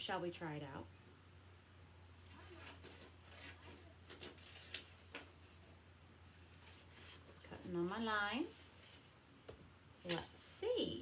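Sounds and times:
paper handling: 0:02.3 - 0:05.8.

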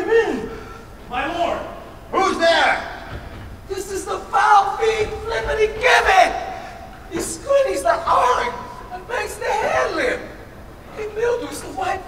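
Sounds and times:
person yelling in a large hall: 0:00.0 - 0:12.0.

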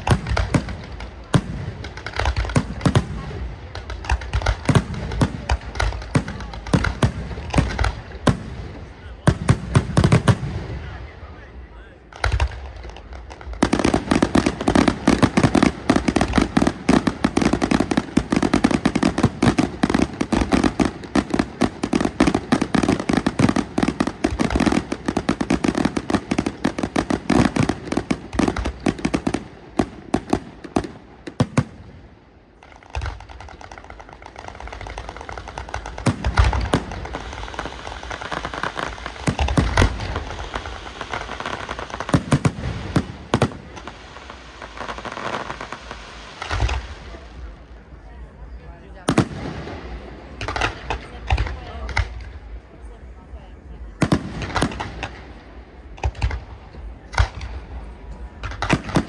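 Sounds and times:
fireworks barrage: 0:00.0 - 0:59.0
fireworks crackling: 0:00.0 - 0:59.0.

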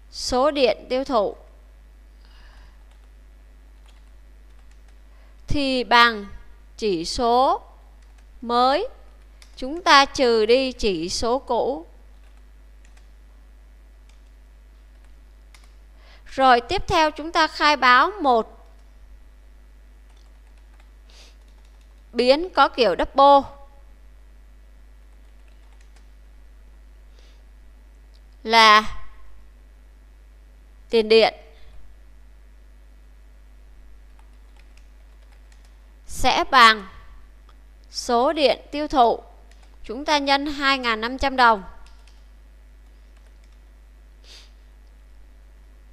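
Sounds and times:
steady low hum: 0:00.0 - 0:45.9
computer keyboard typing: 0:02.8 - 0:03.2, 0:03.8 - 0:05.0, 0:08.0 - 0:08.3, 0:09.2 - 0:09.9, 0:12.1 - 0:13.2, 0:14.0 - 0:15.8, 0:20.1 - 0:22.1, 0:25.0 - 0:26.2, 0:34.1 - 0:35.8, 0:39.4 - 0:39.8, 0:41.8 - 0:43.7.

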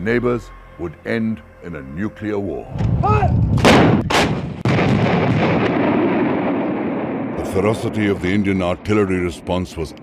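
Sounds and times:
howitzer blasts: 0:02.8 - 0:10.0.

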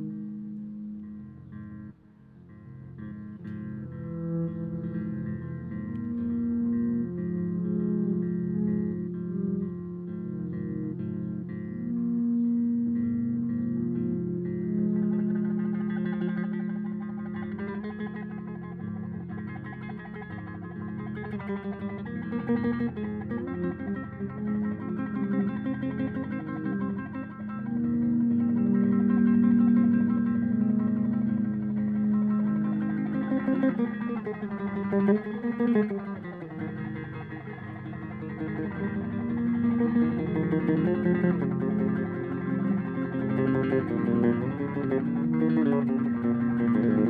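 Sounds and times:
electric bass guitar with effects: 0:00.0 - 0:47.0.

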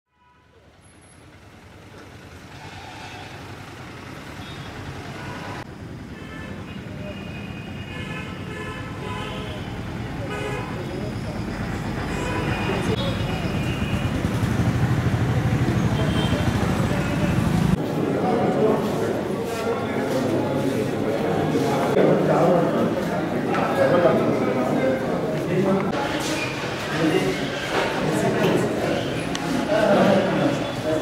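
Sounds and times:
road traffic: 0:00.1 - 0:31.0
vehicle horns tooting: 0:04.4 - 0:11.2, 0:12.0 - 0:14.4, 0:15.8 - 0:17.6
people's voices: 0:09.0 - 0:31.0.

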